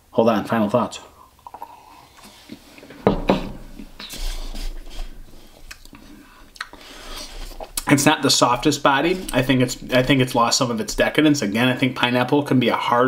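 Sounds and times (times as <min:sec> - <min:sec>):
breathy mouth sounds: 0:01.1 - 0:07.9
man sipping and swallowing beer: 0:01.4 - 0:07.9.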